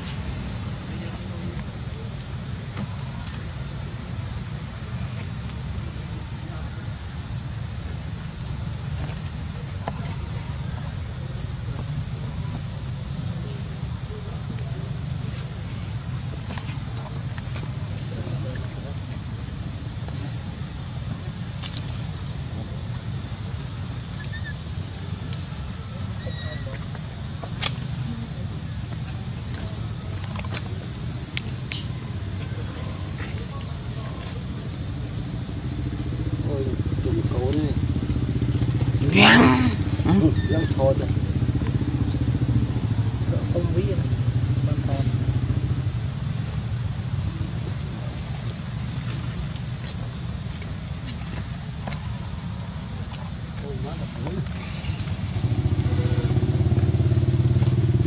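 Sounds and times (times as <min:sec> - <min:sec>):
engine running low rumble: 0:00.0 - 0:58.0.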